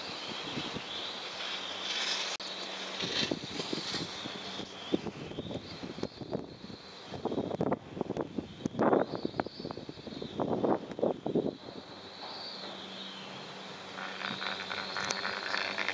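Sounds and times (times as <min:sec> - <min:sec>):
wind noise: 0:00.0 - 0:01.0, 0:03.0 - 0:12.0, 0:14.0 - 0:15.9
steady mechanical hum: 0:00.0 - 0:15.9.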